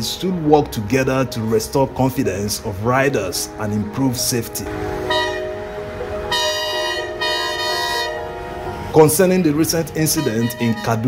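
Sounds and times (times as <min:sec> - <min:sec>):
train horn blast: 0:05.0 - 0:08.6, 0:10.0 - 0:11.0.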